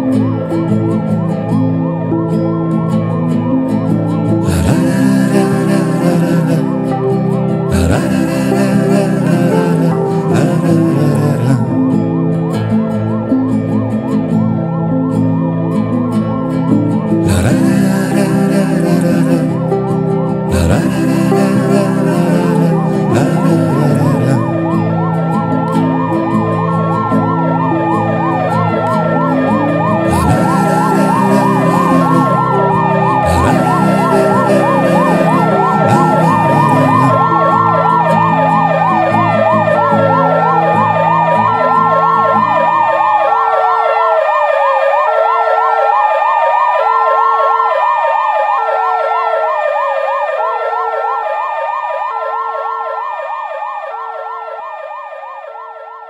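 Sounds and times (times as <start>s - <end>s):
held instrumental chord: 0.0s - 43.2s
wailing siren: 0.0s - 56.0s.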